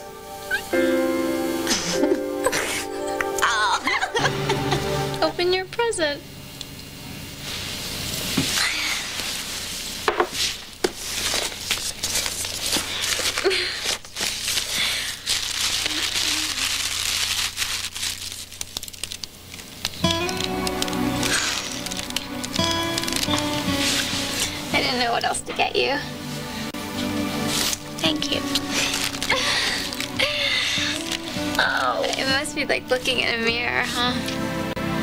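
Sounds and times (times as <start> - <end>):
soft background music: 0.0 - 6.2, 20.0 - 35.0
wrapping paper crinkling and tearing: 8.6 - 25.3, 27.4 - 33.2.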